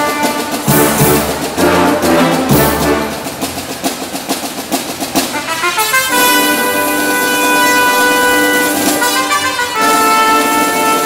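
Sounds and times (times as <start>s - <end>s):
drum strokes: 0.0s - 11.0s
marching band brass: 0.0s - 11.0s.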